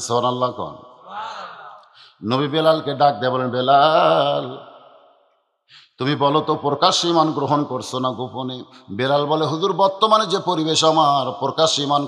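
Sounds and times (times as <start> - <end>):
man preaching: 0.0 - 4.7, 5.8 - 12.0
short breath: 1.1 - 2.2.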